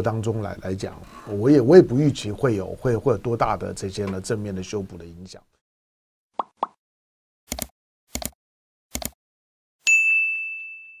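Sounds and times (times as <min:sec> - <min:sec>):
bright bell ding: 0:09.8 - 0:11.0.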